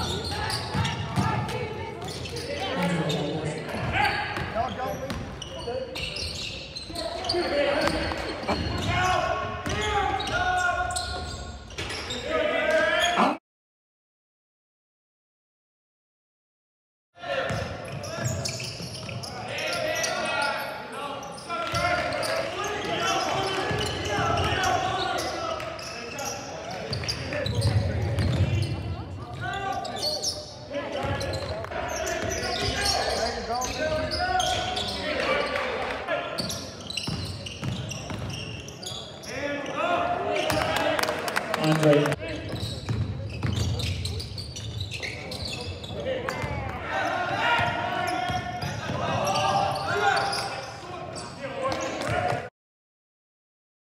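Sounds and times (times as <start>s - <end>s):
players calling out: 0.0s - 11.4s
sneaker squeaks: 0.0s - 13.4s, 17.4s - 35.6s, 36.3s - 40.7s, 42.3s - 52.4s
basketball bouncing on court: 3.7s - 5.4s, 9.6s - 9.9s, 26.9s - 29.4s, 36.4s - 38.4s, 42.5s - 44.0s.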